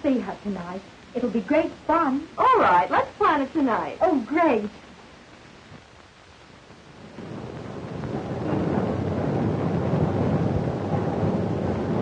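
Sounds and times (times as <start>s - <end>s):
loud rumbling rush of noise: 6.7s - 12.0s.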